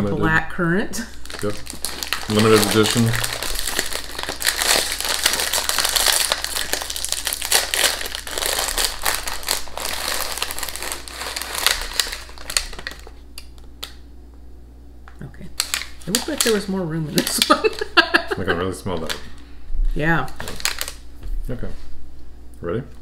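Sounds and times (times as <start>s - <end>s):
plastic wrapper crinkling: 1.0s - 14.0s, 15.6s - 19.4s, 20.2s - 21.1s.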